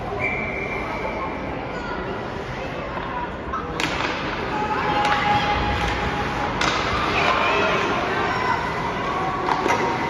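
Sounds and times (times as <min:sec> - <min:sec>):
ice rink background noise: 0:00.0 - 0:10.0
hockey puck crack: 0:03.8 - 0:07.4, 0:09.4 - 0:10.0.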